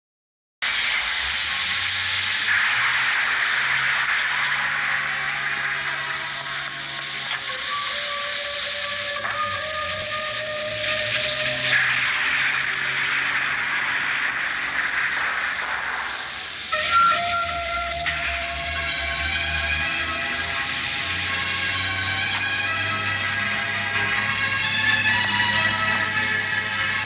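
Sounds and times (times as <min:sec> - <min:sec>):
dramatic film score held tones: 0:00.6 - 0:27.0
rush of noise: 0:00.6 - 0:27.0.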